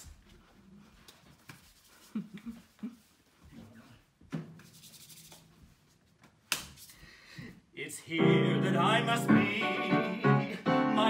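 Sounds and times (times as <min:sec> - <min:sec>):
rubbing and handling noises: 0:00.0 - 0:07.0.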